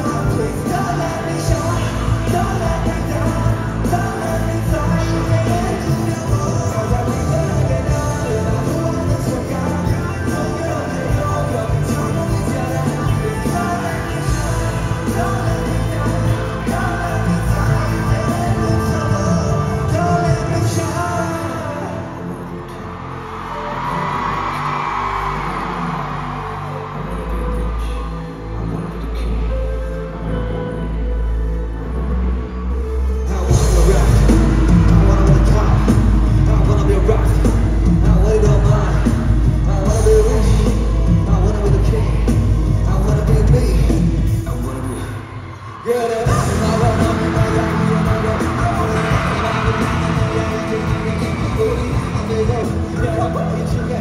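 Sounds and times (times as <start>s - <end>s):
heavy deep bass: 0.0s - 45.0s, 46.2s - 54.0s
instrumental music over sound system: 0.0s - 54.0s.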